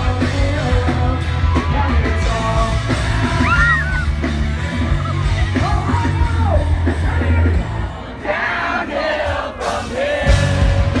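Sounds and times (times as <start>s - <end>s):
pop-punk band playing live: 0.0s - 11.0s.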